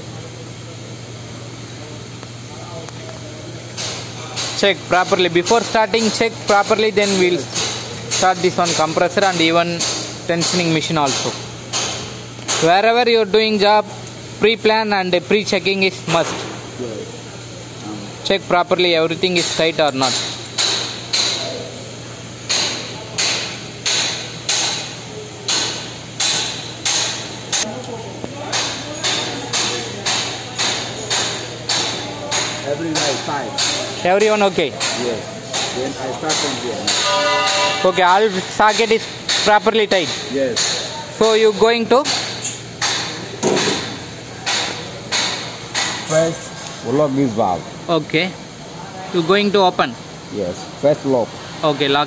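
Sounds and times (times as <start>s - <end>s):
air pump clanking and hissing: 0.0s - 17.0s, 17.7s - 48.3s.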